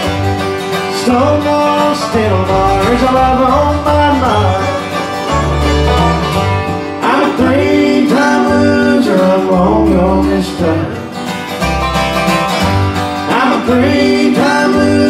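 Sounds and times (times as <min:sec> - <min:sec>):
fiddle: 0:00.0 - 0:07.5
acoustic guitar: 0:00.0 - 0:15.0
banjo: 0:00.0 - 0:15.0
upright bass plucked notes: 0:00.0 - 0:15.0.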